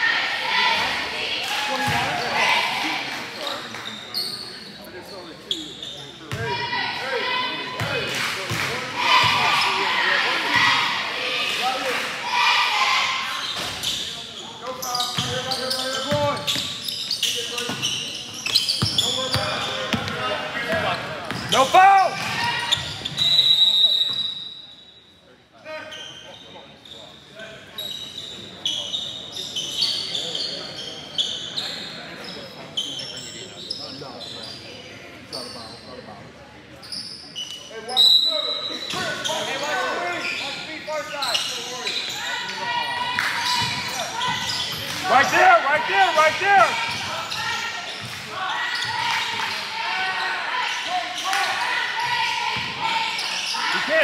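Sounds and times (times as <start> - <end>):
shouting and chatter: 0.0 - 24.6, 36.8 - 54.0
basketball bouncing on court: 18.8 - 21.6.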